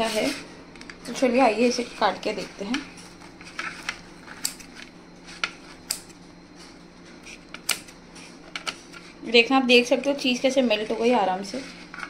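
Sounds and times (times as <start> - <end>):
scissors snipping: 4.4 - 4.7, 5.8 - 6.1, 7.3 - 7.9.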